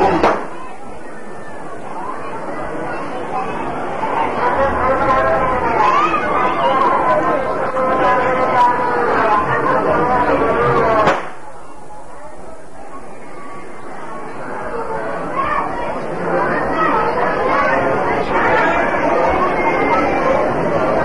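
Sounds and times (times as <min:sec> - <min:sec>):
crowd of men talking: 0:00.0 - 0:21.0.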